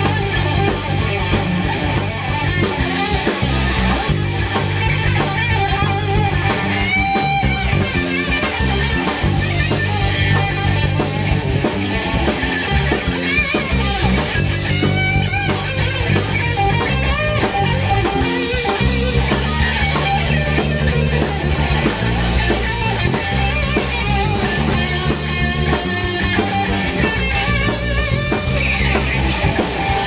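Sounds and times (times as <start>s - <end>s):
rock band playing live: 0.0s - 30.0s.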